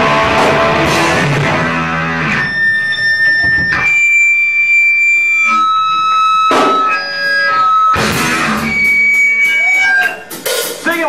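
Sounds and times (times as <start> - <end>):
rock band crashing hits: 0.0 - 2.4
electric guitar ringing tones: 0.0 - 10.5.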